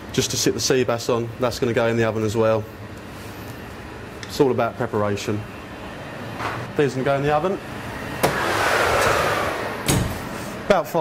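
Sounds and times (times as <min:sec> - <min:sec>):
oven fan rushing with whine: 0:00.0 - 0:11.0.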